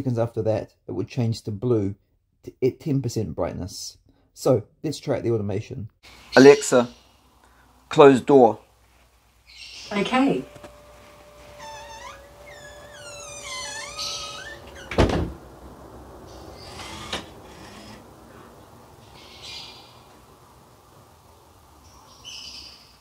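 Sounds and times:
high squeaks sliding in pitch: 9.8 - 15.2
motorized door humming: 9.8 - 18.9
door shutting thunk: 10.5 - 15.5.

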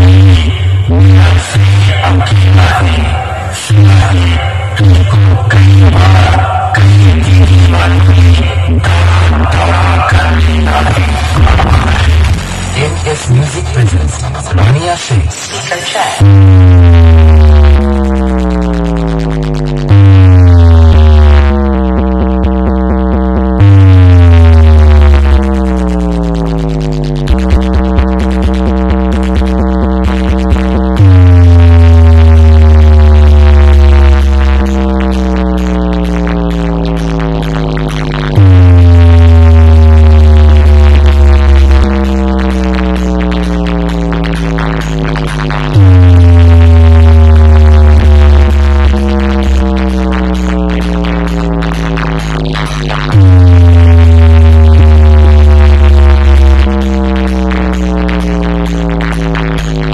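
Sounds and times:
bass drop sliding downward: 0.0 - 14.8, 16.2 - 59.9
loud electronic dance music: 0.0 - 59.9.

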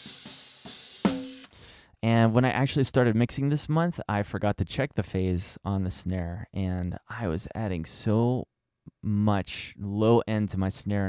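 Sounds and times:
snare drum hits: 0.0 - 1.5
hi-hat: 0.0 - 1.6.

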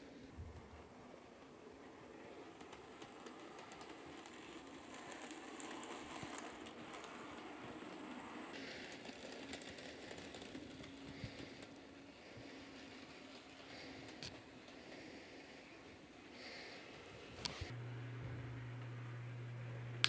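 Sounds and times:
model train motor humming: 1.4 - 17.8
wheels ticking over track joints: 2.3 - 15.0.

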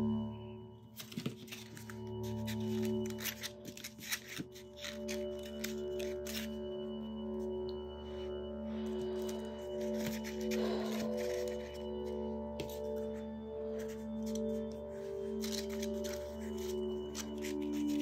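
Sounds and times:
soft sustained background music: 0.0 - 18.0
paper flowers rustling and tapping: 0.9 - 6.6, 9.2 - 18.0.

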